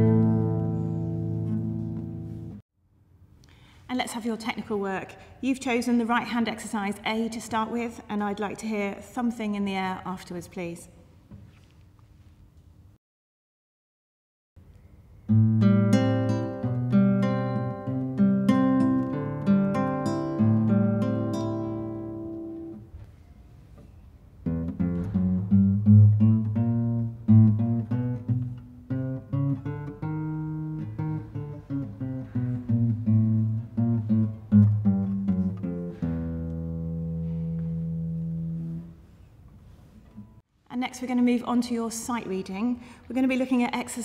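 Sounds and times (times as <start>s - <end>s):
classical guitar plucked notes: 0.0s - 2.6s, 15.3s - 22.8s, 24.4s - 39.1s.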